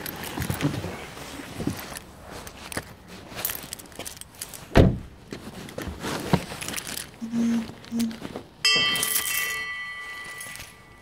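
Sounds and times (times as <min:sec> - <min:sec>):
bright metallic ring: 0:08.6 - 0:11.0.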